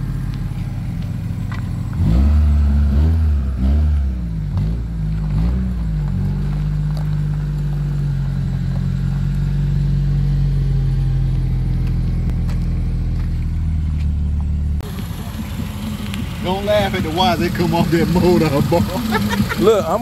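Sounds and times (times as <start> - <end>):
car engine revving and idling: 0.0 - 20.0.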